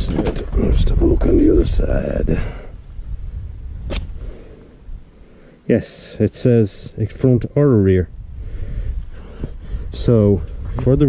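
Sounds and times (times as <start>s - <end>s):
sharp click: 3.9s - 4.1s.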